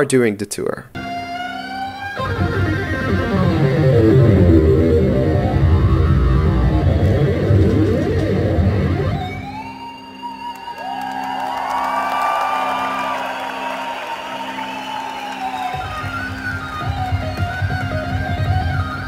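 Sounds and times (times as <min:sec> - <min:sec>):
keytar synth lead with pitch bends: 0:01.0 - 0:10.2
live rock band music: 0:01.0 - 0:10.8, 0:14.4 - 0:19.0.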